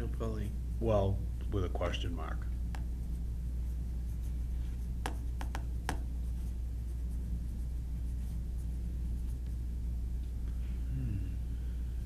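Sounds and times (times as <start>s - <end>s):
low room hum: 0.0s - 12.0s.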